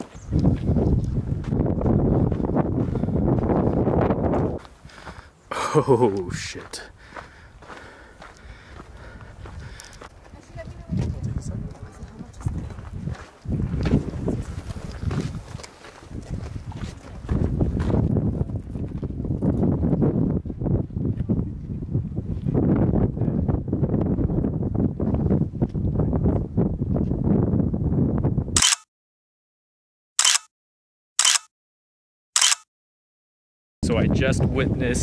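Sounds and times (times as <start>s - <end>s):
footsteps on stone steps: 0.0s - 5.3s, 6.6s - 19.2s
wind rumbling on microphone: 0.0s - 5.3s, 7.0s - 28.6s, 33.8s - 35.0s.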